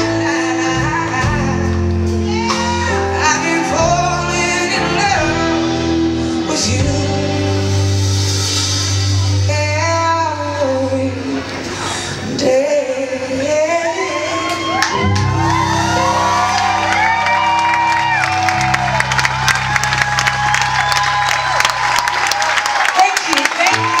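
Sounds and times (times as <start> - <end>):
woman singing: 0.0 - 7.8, 9.5 - 11.5, 12.1 - 15.1
electric guitar: 0.0 - 10.2
bass notes: 0.0 - 11.8, 14.6 - 22.2
stage piano: 0.0 - 24.0
drums and cymbals: 0.8 - 10.1.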